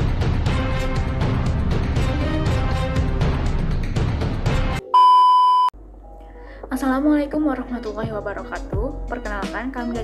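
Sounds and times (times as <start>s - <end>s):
background music: 0.0s - 5.0s, 5.8s - 10.0s
loud electronic beep: 4.9s - 5.7s.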